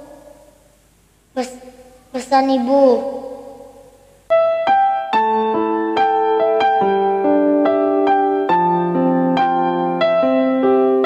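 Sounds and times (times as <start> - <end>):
slow piano keyboard notes: 3.7 - 11.0.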